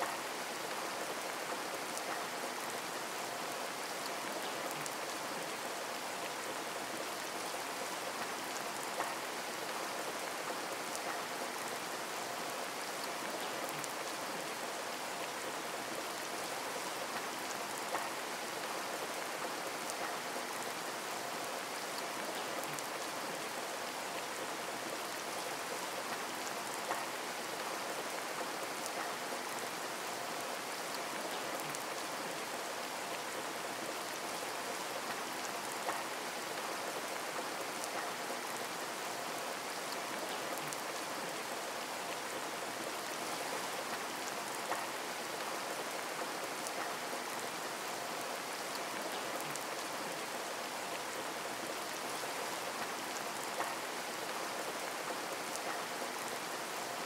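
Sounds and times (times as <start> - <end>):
steady rain falling: 0.0 - 57.0.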